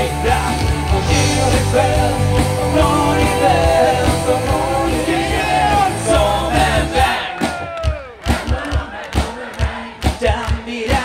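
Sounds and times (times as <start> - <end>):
crowd shouting and chanting: 0.0 - 11.0
live rock band: 0.0 - 11.0.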